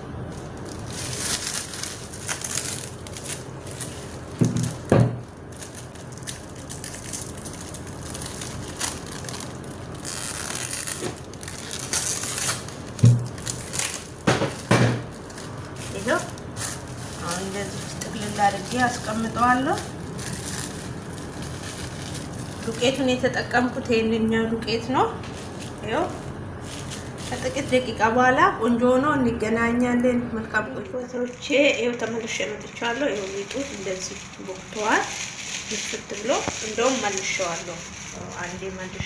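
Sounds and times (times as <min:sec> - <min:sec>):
cling film crinkling: 0:00.0 - 0:23.8, 0:25.2 - 0:28.0, 0:31.0 - 0:39.0.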